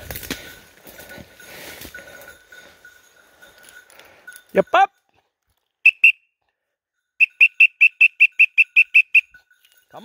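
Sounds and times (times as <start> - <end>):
high-pitched whistle toots: 5.8 - 6.3, 7.2 - 9.4.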